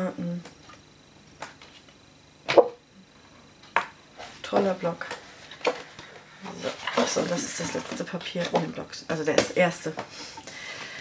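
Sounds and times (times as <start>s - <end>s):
paper and card rustling: 5.0s - 8.7s.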